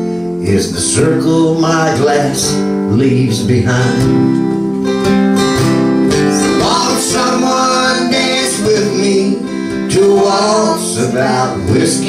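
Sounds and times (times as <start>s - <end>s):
strummed acoustic guitar waltz: 0.0s - 12.0s
higher melody line: 1.6s - 12.0s.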